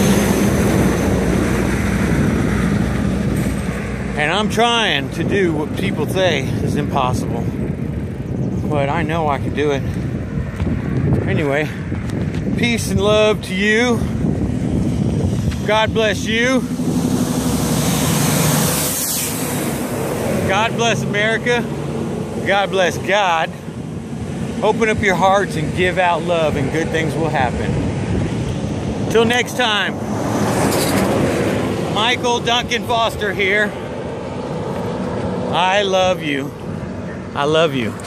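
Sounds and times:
heavy truck rumbling past: 0:00.0 - 0:08.6, 0:14.0 - 0:37.4.

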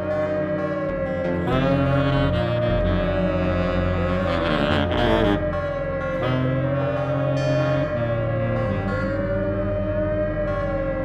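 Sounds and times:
low synthesizer drones: 0:00.0 - 0:11.0
saxophone long wavering note: 0:00.0 - 0:11.0.

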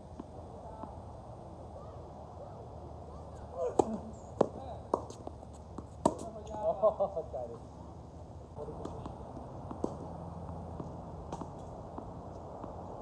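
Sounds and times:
tennis ball struck by rackets: 0:03.6 - 0:06.4, 0:08.6 - 0:13.0
tennis ball bouncing on court: 0:03.7 - 0:06.4, 0:08.6 - 0:13.0.

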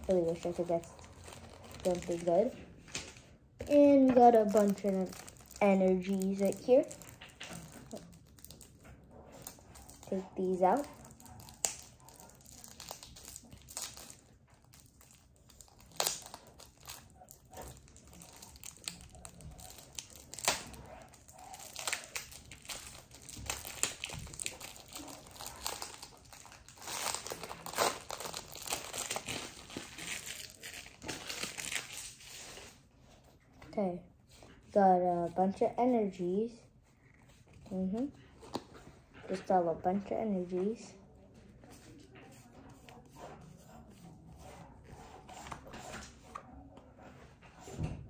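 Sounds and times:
plastic wrapper crinkling and tearing: 0:00.0 - 0:32.8.

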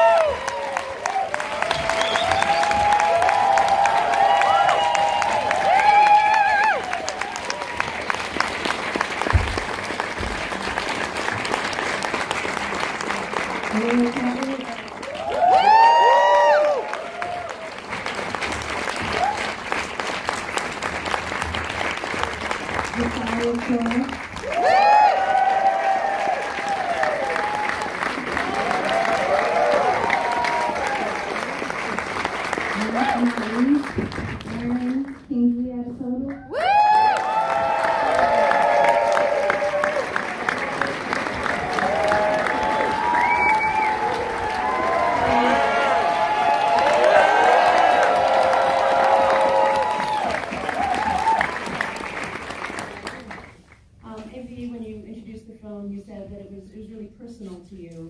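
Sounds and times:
whoops and cheers: 0:00.0 - 0:08.2, 0:15.0 - 0:17.8, 0:19.0 - 0:19.6, 0:24.4 - 0:31.4, 0:36.4 - 0:40.4, 0:41.4 - 0:51.9
audience applauding: 0:00.0 - 0:35.2, 0:36.5 - 0:53.9.

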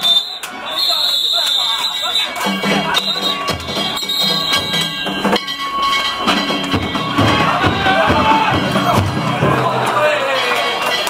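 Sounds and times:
held high tones: 0:00.0 - 0:09.0
crowd noise: 0:00.0 - 0:11.0
drum and gong strikes: 0:02.3 - 0:10.0.

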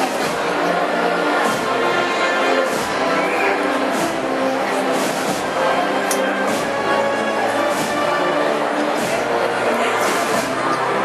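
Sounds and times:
wind band playing held chords: 0:00.0 - 0:11.0.

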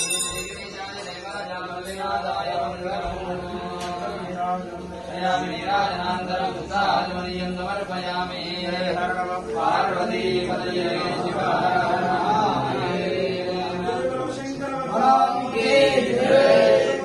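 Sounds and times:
steady low held tone: 0:00.0 - 0:03.5
voices chanting: 0:00.0 - 0:17.0.

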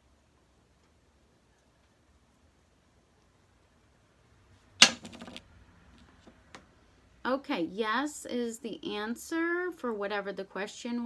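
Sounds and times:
coin clinking and rattling: 0:04.8 - 0:05.4.

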